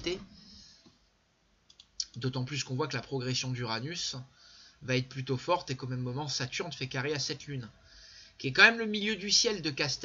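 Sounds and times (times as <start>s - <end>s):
computer mouse clicking: 1.7s - 2.2s.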